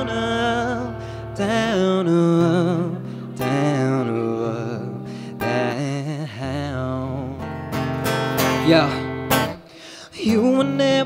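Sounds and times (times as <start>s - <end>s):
man singing with vibrato: 0.0s - 11.0s
strummed acoustic guitar: 0.0s - 11.0s.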